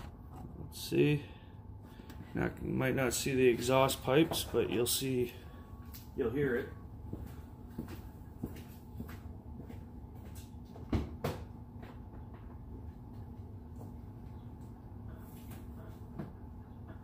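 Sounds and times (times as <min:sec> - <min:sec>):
low steady rumble: 0:00.0 - 0:10.8.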